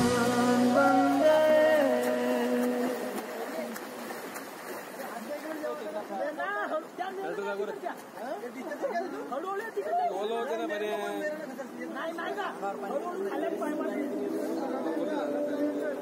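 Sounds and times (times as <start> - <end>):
people chattering: 0.0 - 16.0.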